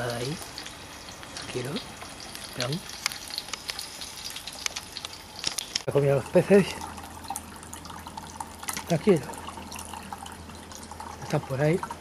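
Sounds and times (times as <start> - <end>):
water trickling and dripping: 0.0 - 12.0.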